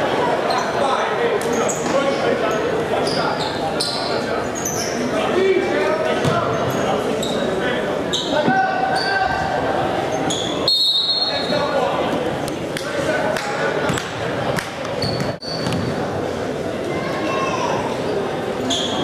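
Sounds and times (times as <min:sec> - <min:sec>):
spectator voices and chatter: 0:00.0 - 0:19.0
sneakers squeaking on court floor: 0:01.5 - 0:05.1, 0:06.2 - 0:07.5, 0:14.9 - 0:16.0, 0:18.6 - 0:19.0.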